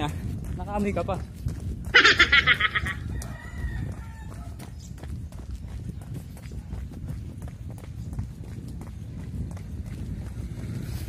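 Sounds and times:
jogger's footfalls: 0:00.0 - 0:11.0
rooster crowing: 0:02.6 - 0:04.6.

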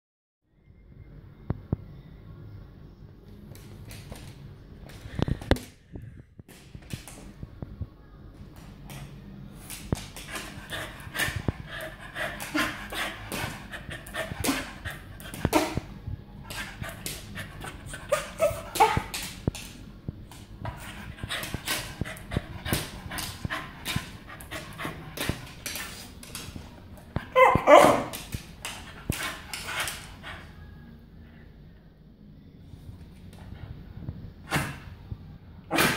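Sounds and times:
small dog panting: 0:10.3 - 0:15.6.

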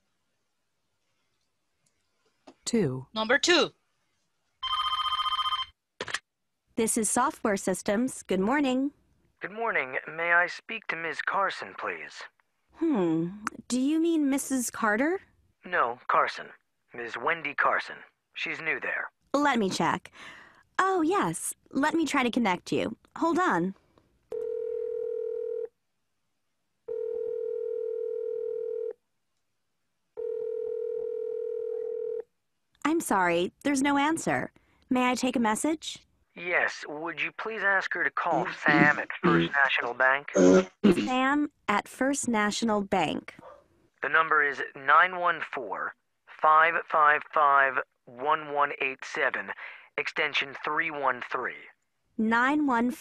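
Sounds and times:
telephone ringing: 0:04.6 - 0:05.8, 0:24.3 - 0:25.7, 0:26.9 - 0:29.0, 0:30.2 - 0:32.2.

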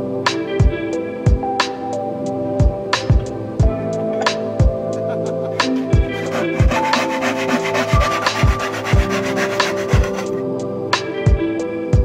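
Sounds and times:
background music with beat: 0:00.0 - 0:12.0
hand saw cutting wood: 0:05.6 - 0:10.4.

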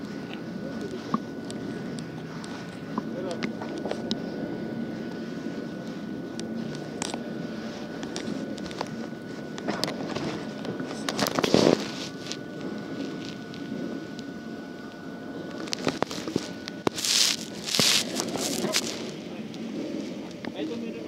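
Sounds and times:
people talking indistinctly: 0:00.2 - 0:06.6, 0:17.2 - 0:21.0.

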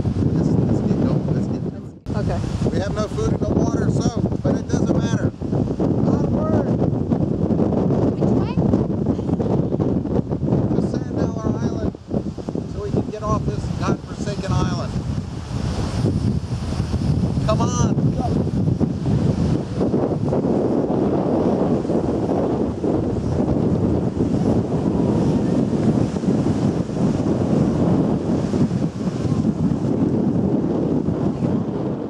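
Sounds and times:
surf breaking on shore: 0:00.0 - 0:32.0
wind buffeting microphone: 0:00.0 - 0:32.0.

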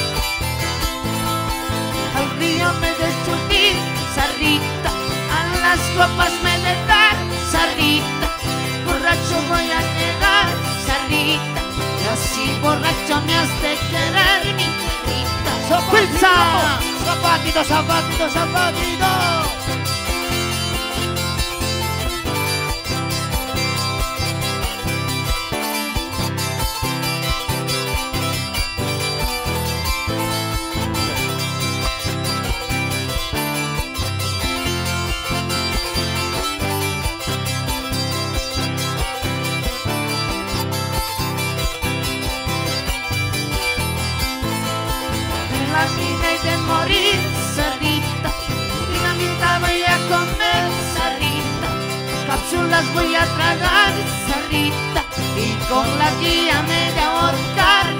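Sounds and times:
plucked strings: 0:00.0 - 0:57.9.

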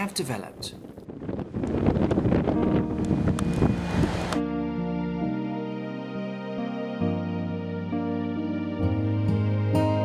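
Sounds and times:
wind buffeting microphone: 0:00.0 - 0:04.4
outdoor city noise: 0:00.0 - 0:05.5
soft slow keyboard music: 0:02.4 - 0:10.0.

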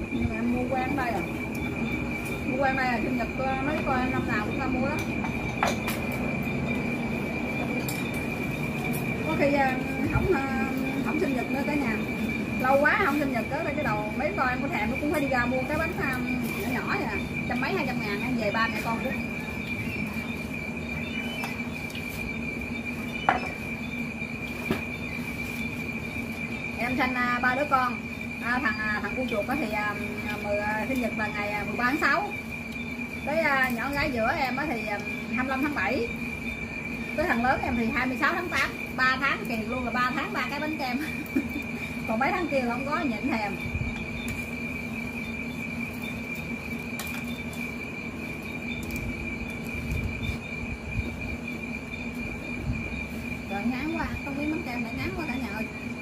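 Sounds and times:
night insects trilling: 0:00.0 - 0:56.0.

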